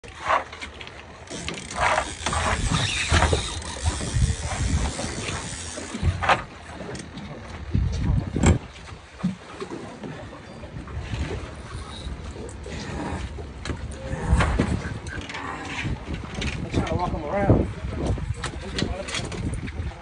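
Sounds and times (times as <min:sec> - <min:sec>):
sharp knocks on boat: 0:07.8 - 0:09.7.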